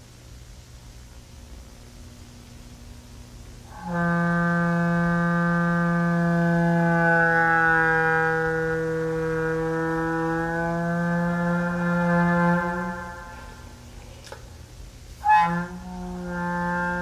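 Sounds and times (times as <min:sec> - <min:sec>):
long low wind instrument note: 0:02.6 - 0:14.1, 0:15.2 - 0:17.0.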